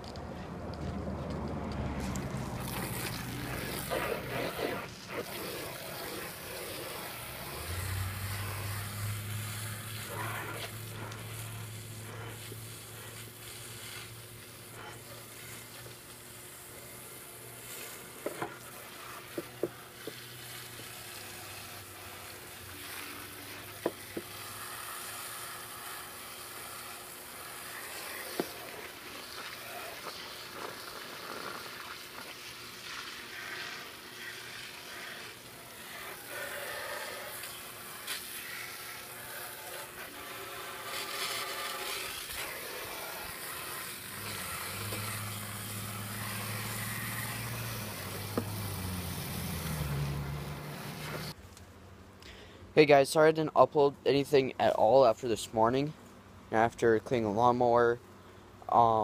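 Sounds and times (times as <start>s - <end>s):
hose nozzle spraying water: 1.7s - 51.4s.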